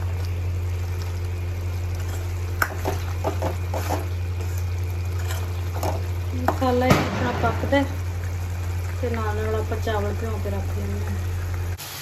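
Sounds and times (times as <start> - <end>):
steady low hum: 0.0 - 11.8
food simmering in a pan: 0.0 - 12.0.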